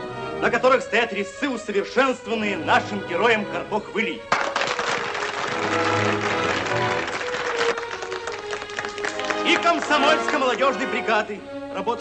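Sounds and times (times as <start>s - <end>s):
crowd applauding: 4.3s - 11.1s.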